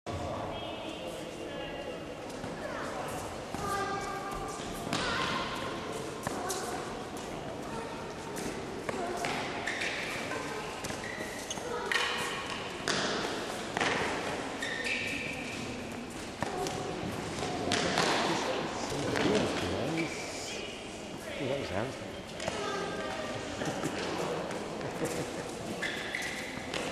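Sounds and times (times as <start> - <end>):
people talking: 16.4 - 25.6
tennis ball bouncing on court: 17.4 - 18.3.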